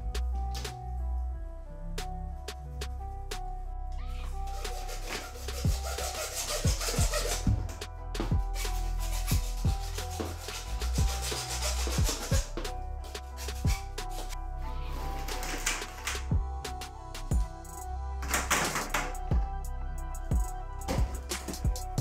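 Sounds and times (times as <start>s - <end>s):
background music with steady beat: 0.0s - 22.0s
hacksaw cutting plastic tube: 4.6s - 7.8s, 8.6s - 12.5s.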